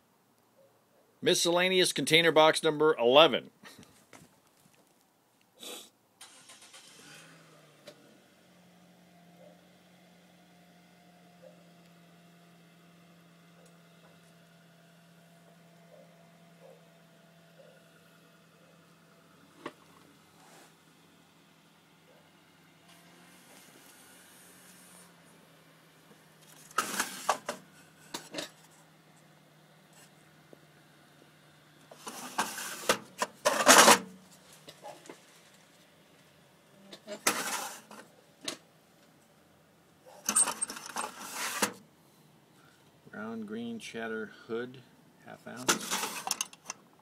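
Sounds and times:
plastic and metal hooks clattering: 45.6 - 46.8.

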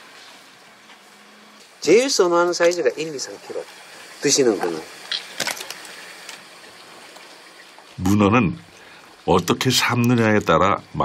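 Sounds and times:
running water hiss: 0.0 - 11.0.

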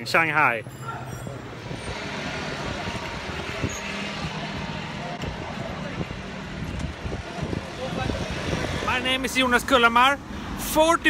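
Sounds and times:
passing scooters and cars: 0.0 - 11.0.

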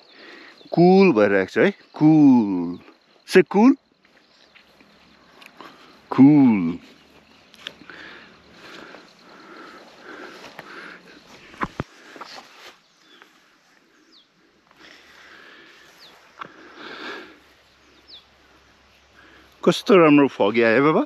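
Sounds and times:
high falling bird chirps: 0.0 - 21.0.

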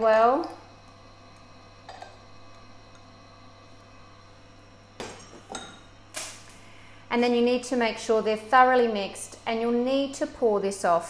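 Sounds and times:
steady low hum: 0.0 - 11.0
glass beakers clinking: 5.0 - 5.8.

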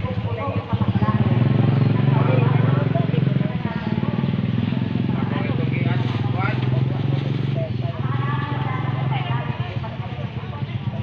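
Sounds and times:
engine idling: 0.0 - 11.0
people talking: 0.0 - 11.0.

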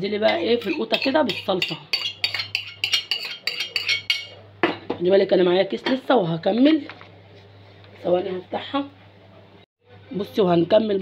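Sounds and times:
metal spoon scraping a pan: 0.2 - 4.4.

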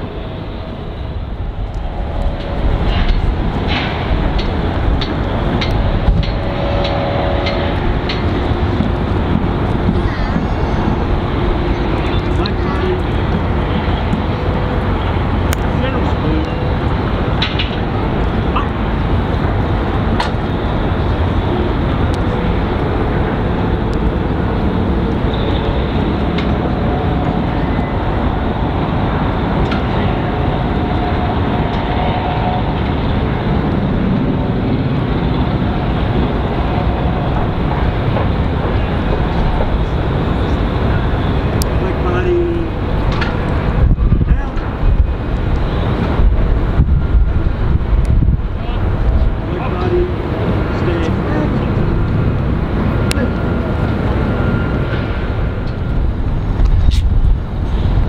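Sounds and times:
crowd murmur: 0.0 - 19.5
low rumbling noise: 0.0 - 58.0.

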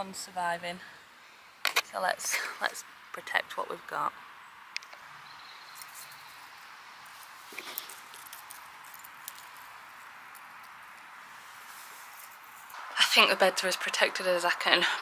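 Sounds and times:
outdoor hiss: 0.0 - 15.0
eggshell pieces dropping on soil: 7.0 - 11.1.

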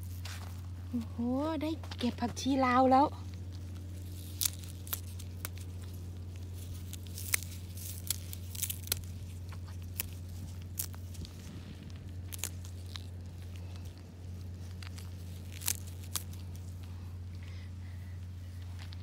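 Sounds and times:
steady low hum: 0.0 - 19.0
leaves rustling: 2.6 - 17.4
plant stems snapping: 3.5 - 16.9.

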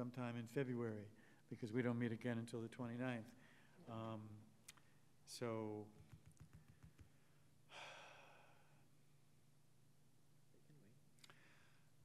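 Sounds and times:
person sighing: 7.7 - 8.7.

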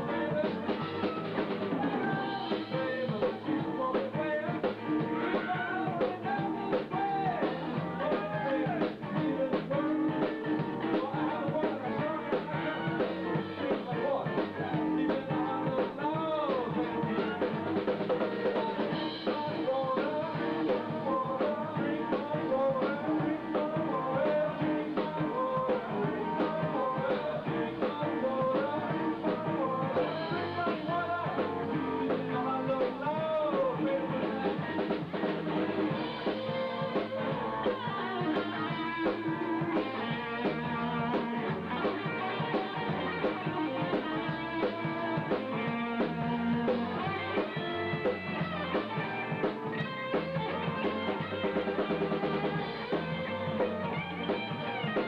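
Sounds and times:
blues band playing: 0.0 - 55.0
electric guitar bending notes: 0.0 - 55.0.

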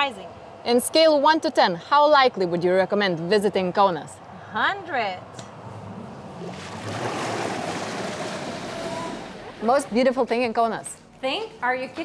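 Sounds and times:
rushing water and spray: 6.4 - 9.8.

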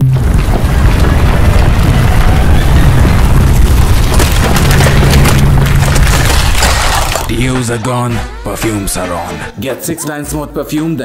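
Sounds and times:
cans crackling and popping: 0.0 - 7.8.

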